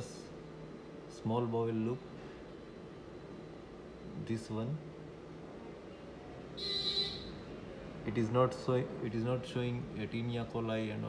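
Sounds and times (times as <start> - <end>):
electronic buzzing beep: 6.6 - 7.4.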